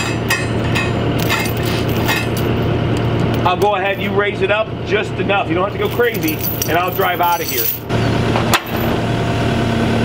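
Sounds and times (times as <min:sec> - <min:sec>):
metallic chain clinks: 0:00.0 - 0:02.5, 0:05.8 - 0:07.9
diesel engine running: 0:00.0 - 0:10.0.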